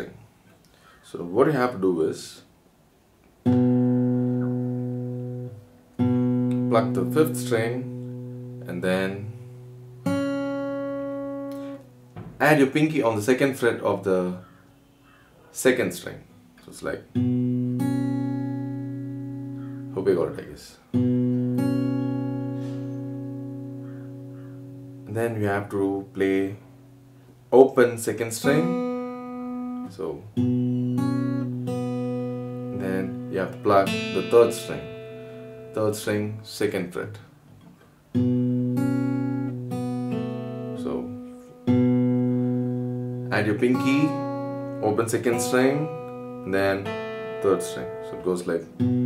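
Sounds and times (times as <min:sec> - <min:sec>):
acoustic guitar fingerpicked: 0:03.2 - 0:49.0.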